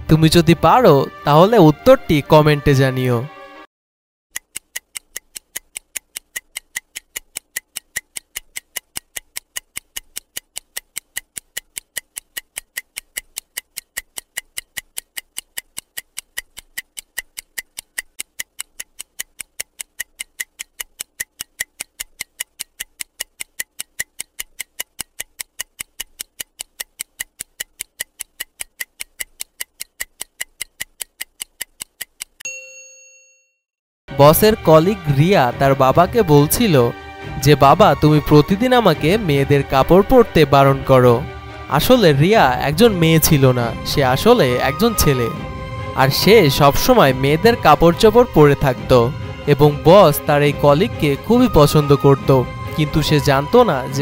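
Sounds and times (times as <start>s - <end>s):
stopwatch ticking: 4.3s - 32.4s, 41.8s - 45.4s
chime ringing: 32.4s - 33.6s.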